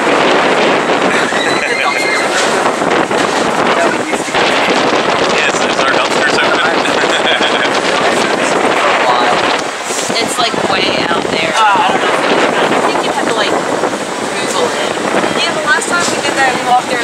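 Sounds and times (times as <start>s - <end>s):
wind on microphone: 0.0s - 17.0s.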